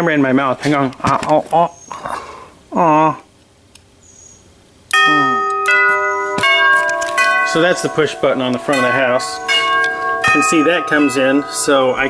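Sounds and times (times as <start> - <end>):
doorbell chime: 5.0 - 12.0.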